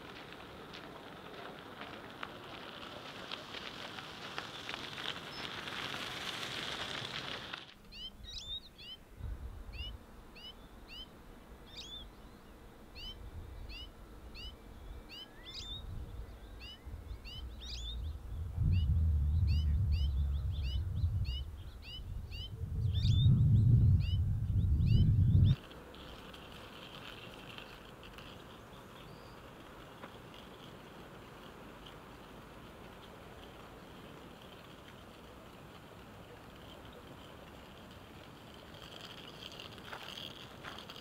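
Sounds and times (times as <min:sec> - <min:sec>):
steady hiss: 0:00.0 - 0:18.4, 0:25.6 - 0:41.0
bird chirping: 0:07.9 - 0:25.6, 0:28.4 - 0:29.5
wind rumbling on microphone: 0:08.2 - 0:10.1, 0:13.1 - 0:25.6.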